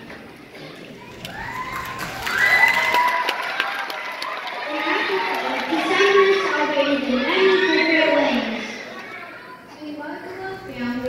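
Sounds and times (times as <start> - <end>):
children cheering and shouting: 0.6 - 9.7.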